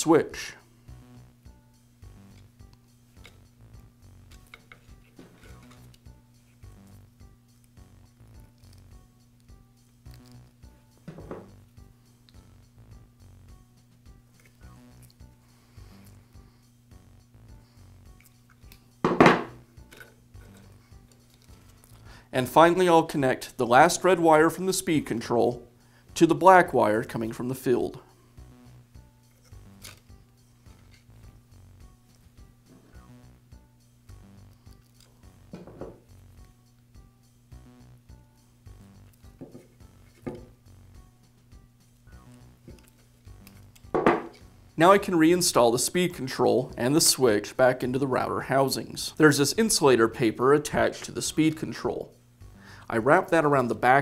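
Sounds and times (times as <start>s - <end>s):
quiet background music: 0.0s - 54.0s.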